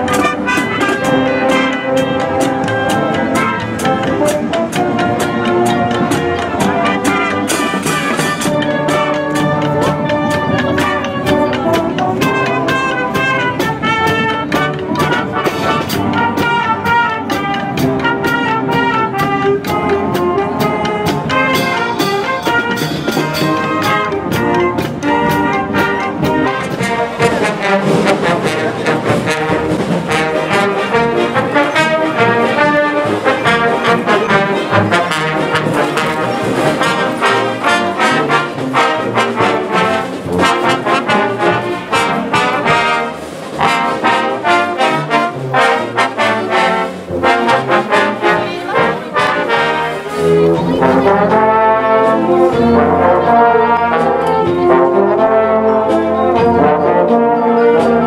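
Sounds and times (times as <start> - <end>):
held brass chords: 0.0 - 58.0
marching band playing: 0.0 - 58.0.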